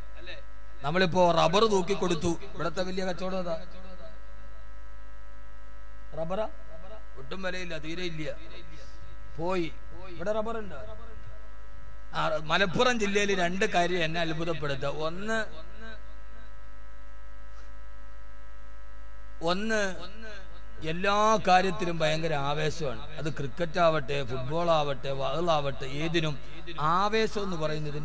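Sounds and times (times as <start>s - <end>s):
electrical mains hum: 0.0s - 28.0s.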